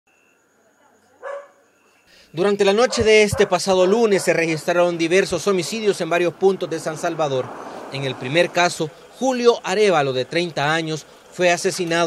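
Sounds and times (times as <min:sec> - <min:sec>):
dog barking: 0:01.2 - 0:01.6, 0:02.8 - 0:05.0.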